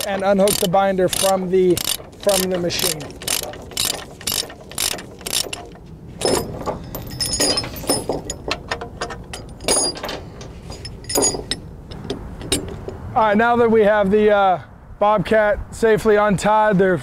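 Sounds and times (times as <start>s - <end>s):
ratchet pawl clicking: 0.0s - 5.8s
steel chain clinking and rattling: 0.0s - 12.8s.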